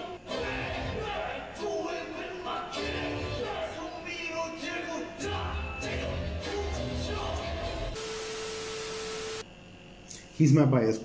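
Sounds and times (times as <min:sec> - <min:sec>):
tv static hiss: 0:00.0 - 0:09.5.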